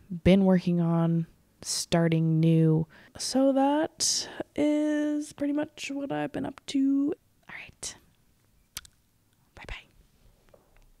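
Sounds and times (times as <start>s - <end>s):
woman whispering: 7.4s - 8.0s, 9.5s - 9.9s.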